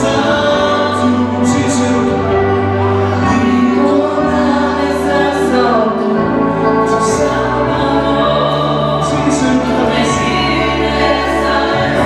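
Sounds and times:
group singing worship songs: 0.0s - 12.0s
held keyboard chords: 0.0s - 12.0s.

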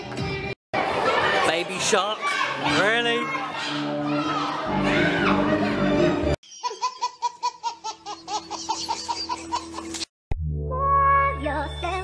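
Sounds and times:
party voices and music: 1.4s - 5.8s
baby laughing: 6.5s - 10.0s.

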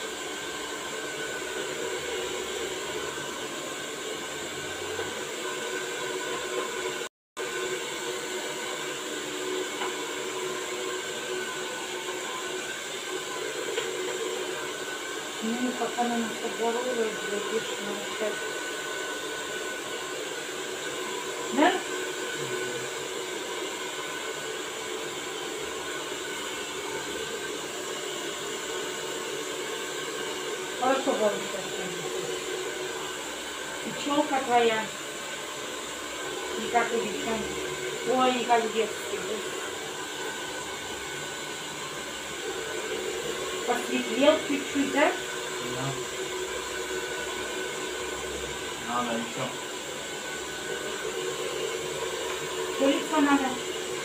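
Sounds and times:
hair dryer blowing: 0.0s - 54.0s.

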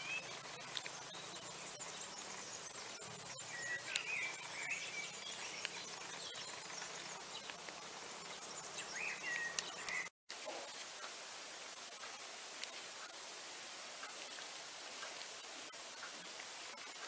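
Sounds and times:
bird calls warbling: 0.0s - 7.6s, 8.2s - 10.1s
steady background hiss: 0.0s - 17.0s.

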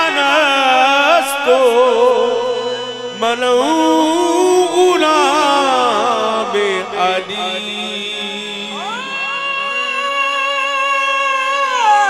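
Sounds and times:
harmonium: 0.0s - 12.0s
man singing ornamented line: 0.0s - 12.0s.

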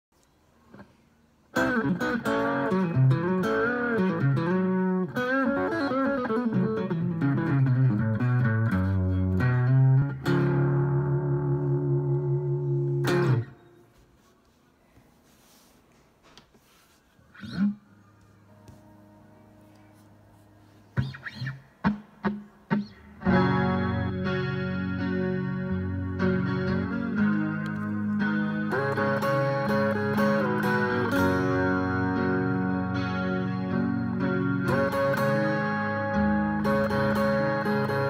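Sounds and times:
electric guitar ringing notes: 1.6s - 13.8s, 20.9s - 38.0s.

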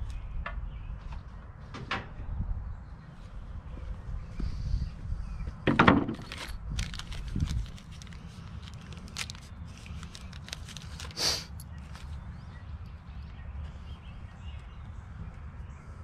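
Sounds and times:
plastic package clicking and crinkling: 6.1s - 12.2s.

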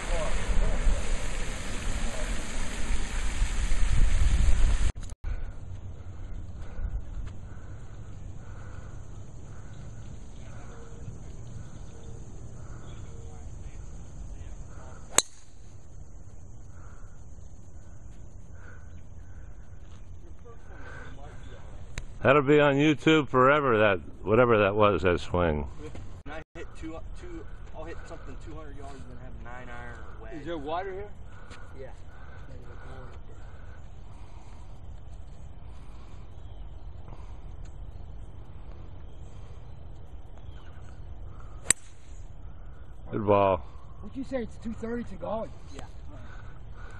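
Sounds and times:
golf club striking ball: 15.1s - 15.6s, 41.6s - 42.1s.

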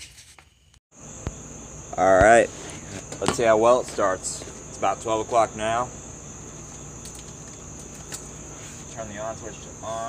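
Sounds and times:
insects chirring: 0.2s - 10.0s.

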